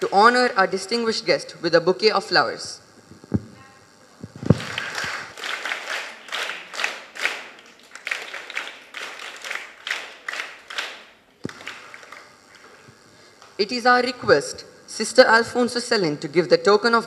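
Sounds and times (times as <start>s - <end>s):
audience clapping: 4.4s - 12.8s.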